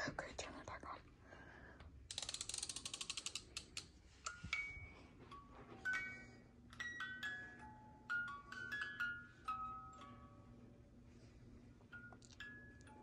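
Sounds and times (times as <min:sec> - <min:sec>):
ratchet clicks: 0:02.1 - 0:03.9
music box chiming tune: 0:04.3 - 0:10.9, 0:11.9 - 0:13.0.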